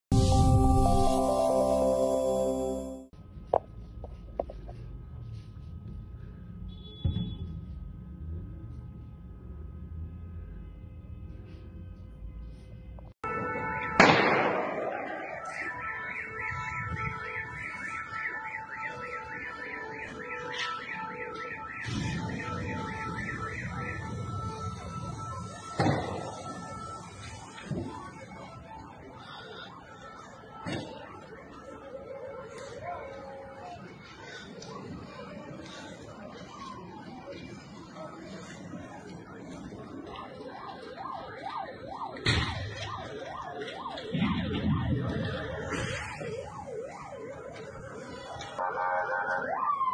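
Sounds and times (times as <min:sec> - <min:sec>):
car alarms warbling: 0:13.2 - 0:28.5
electronic alarm siren wailing: 0:13.2 - 0:49.9
loud bang: 0:14.0 - 0:15.3.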